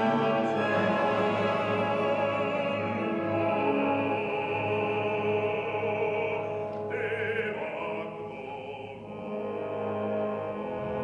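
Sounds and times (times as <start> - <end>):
orchestra holding sustained chords: 0.0 - 11.0.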